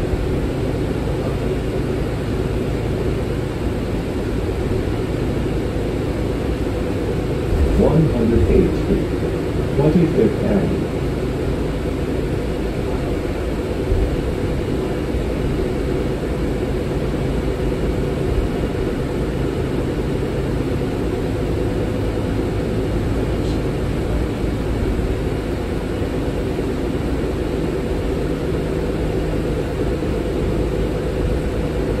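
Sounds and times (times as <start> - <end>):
bus diesel engine droning: 0.0 - 32.0.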